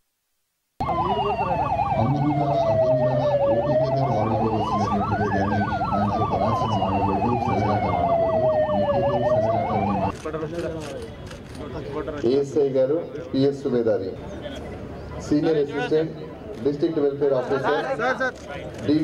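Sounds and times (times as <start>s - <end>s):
siren fast warble: 0.8s - 10.1s
siren wailing: 0.8s - 10.1s.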